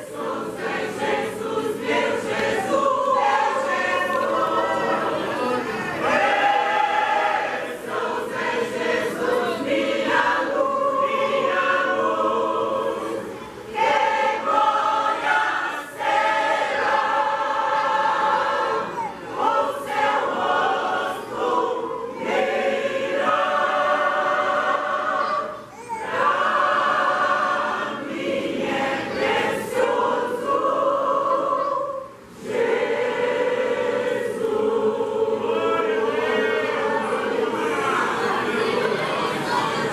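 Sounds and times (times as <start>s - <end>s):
choir singing a hymn: 0.0s - 39.9s.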